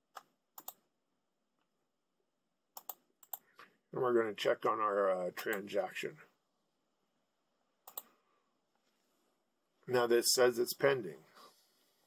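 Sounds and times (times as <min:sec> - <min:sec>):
mouse and keyboard clicks: 0:07.9 - 0:08.1.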